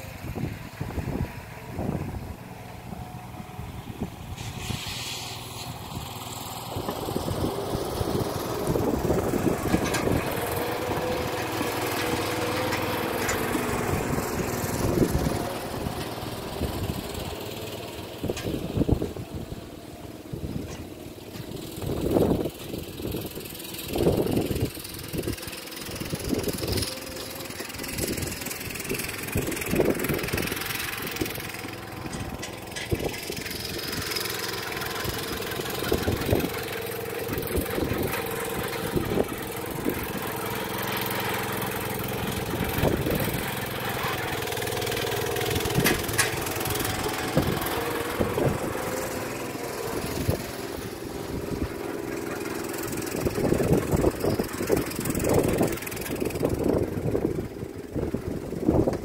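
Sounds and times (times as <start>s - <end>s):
small tractor engine running: 0.0s - 59.0s.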